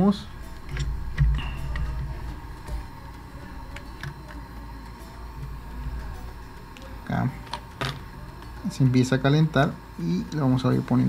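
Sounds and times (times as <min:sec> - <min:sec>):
bench equipment humming: 0:00.0 - 0:11.0.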